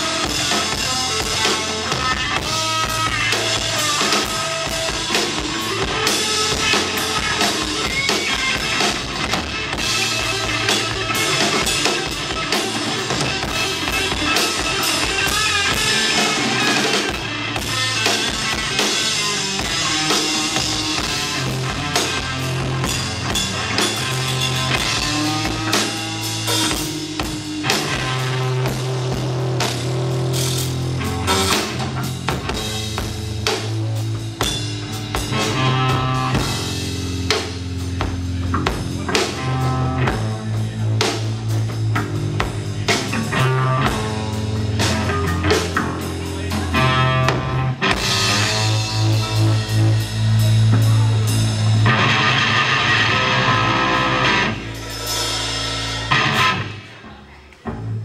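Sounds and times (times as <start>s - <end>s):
live hard rock band: 0.0s - 58.0s.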